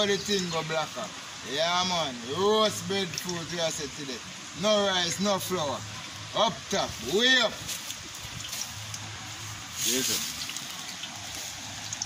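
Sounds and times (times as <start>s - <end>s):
stream running over rocks: 0.0s - 12.0s.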